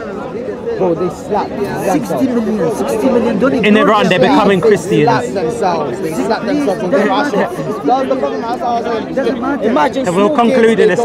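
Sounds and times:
crowd chatter: 0.0 - 11.0
men talking over one another: 0.0 - 11.0.

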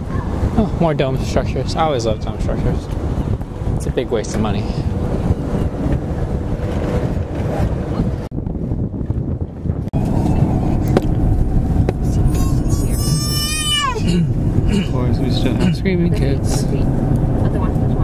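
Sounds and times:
car cabin road rumble: 0.0 - 18.0
wind buffeting microphone: 0.0 - 18.0
child shrieking: 12.3 - 14.2.

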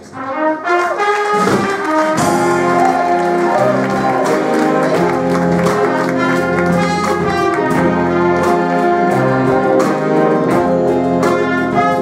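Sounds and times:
jazz big band playing: 0.0 - 12.0.

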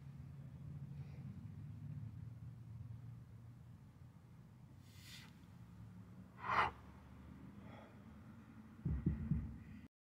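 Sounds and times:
man breathing forcefully: 6.4 - 6.8.

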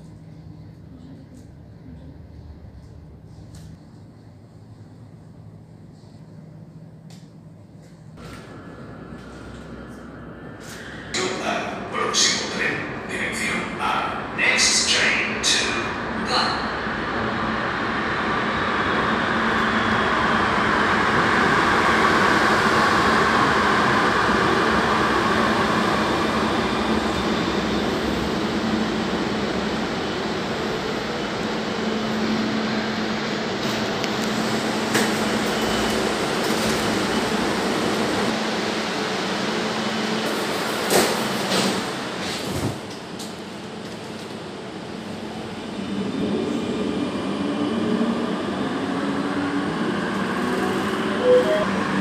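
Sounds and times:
metro train braking to a stop: 8.2 - 43.0, 44.8 - 52.0.

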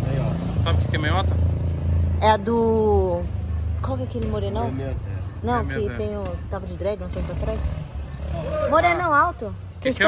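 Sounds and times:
motorcycle engine rumbling: 0.0 - 10.0
voices: 0.0 - 10.0.

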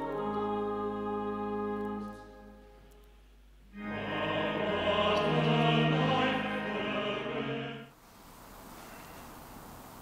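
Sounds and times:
choir singing held chords: 0.0 - 2.9, 3.6 - 8.0.

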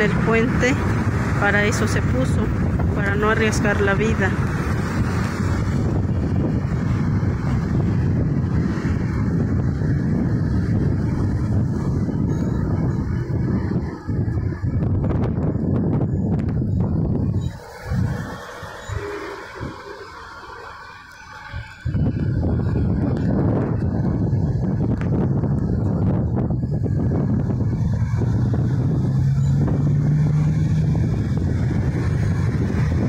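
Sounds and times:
road traffic: 0.0 - 33.0
wind rumble on microphone: 0.0 - 33.0.

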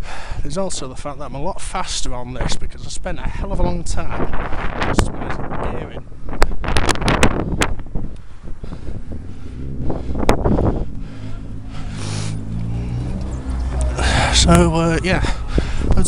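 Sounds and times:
wind buffeting microphone: 2.4 - 16.0
vehicle engine running: 7.4 - 16.0.

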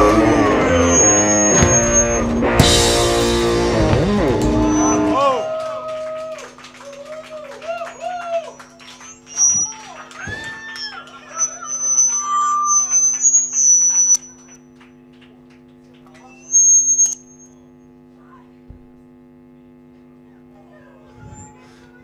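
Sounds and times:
high piercing whistles: 0.0 - 5.7, 7.9 - 14.6, 16.2 - 17.7
amplifier hum: 0.0 - 6.7, 7.9 - 21.6
shouted voices: 4.4 - 11.7.

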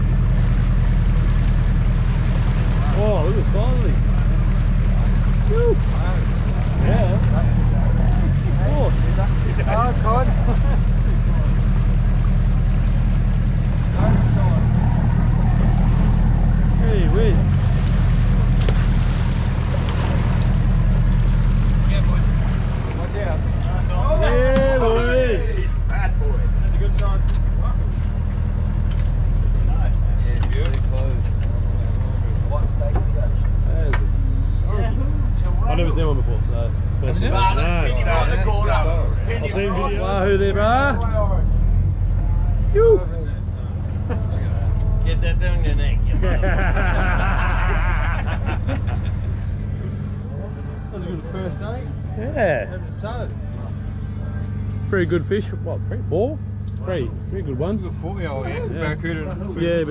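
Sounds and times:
boat engine idling: 0.0 - 59.9
voices calling out: 1.8 - 59.9.

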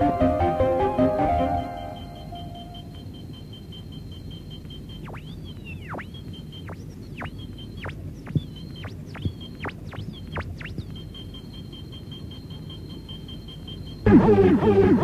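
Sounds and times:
synth effects: 0.0 - 13.1
pulsing high beep: 0.0 - 15.0.

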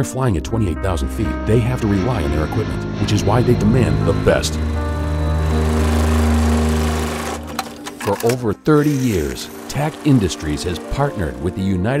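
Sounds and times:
sewing machine running hum: 4.1 - 11.5.

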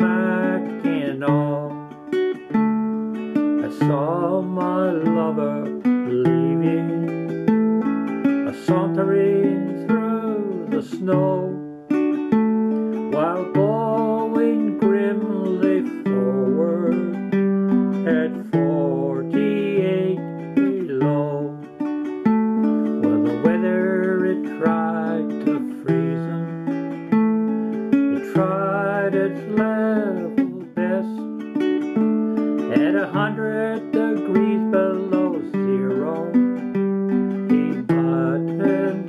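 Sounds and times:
man singing with vibrato: 0.0 - 39.0
strummed ukulele: 0.0 - 39.0.

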